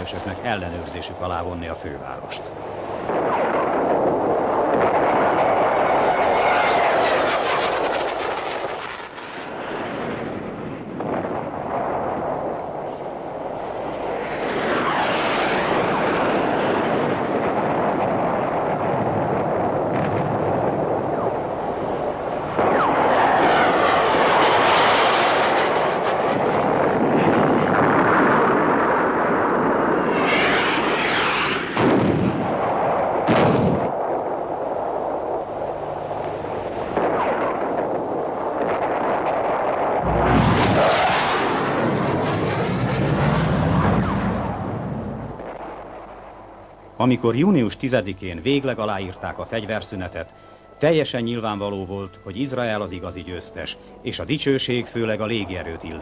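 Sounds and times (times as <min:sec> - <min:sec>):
aircraft passing low overhead: 0:00.0 - 0:56.0
explosions: 0:02.8 - 0:13.0, 0:14.1 - 0:34.3, 0:36.8 - 0:46.2
gunfire: 0:22.5 - 0:26.0, 0:33.2 - 0:33.9.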